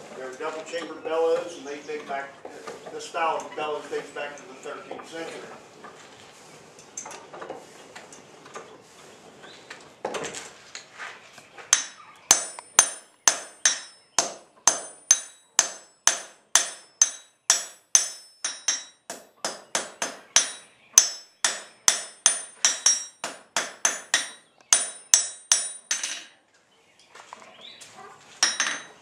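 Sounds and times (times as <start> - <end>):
hammer striking iron on anvil: 11.7 - 26.3, 28.4 - 28.9.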